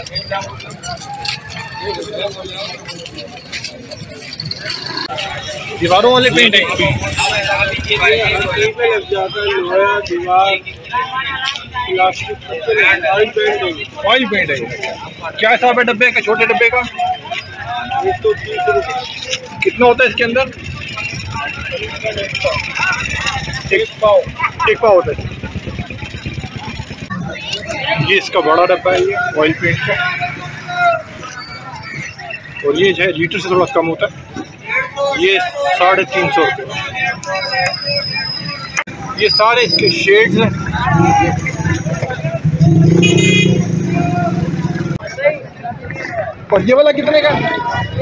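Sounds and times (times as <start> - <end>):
scattered voices: 0.0 - 48.0.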